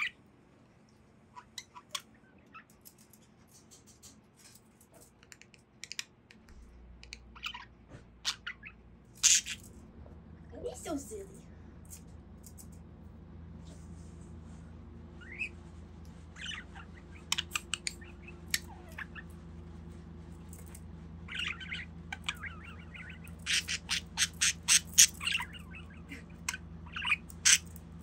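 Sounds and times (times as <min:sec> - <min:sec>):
budgie chirping and squawking: 0:00.0 - 0:00.2, 0:01.3 - 0:02.7, 0:07.0 - 0:09.7, 0:15.2 - 0:15.6, 0:16.2 - 0:19.4, 0:21.3 - 0:27.9.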